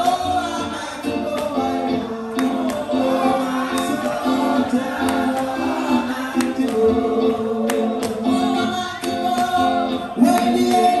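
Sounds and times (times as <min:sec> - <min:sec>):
choir gospel singing: 0:00.0 - 0:09.0.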